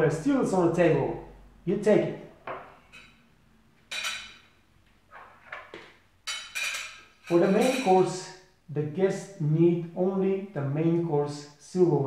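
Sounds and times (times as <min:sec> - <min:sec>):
silverware clinking on china plate: 0:03.9 - 0:04.5, 0:06.2 - 0:08.2.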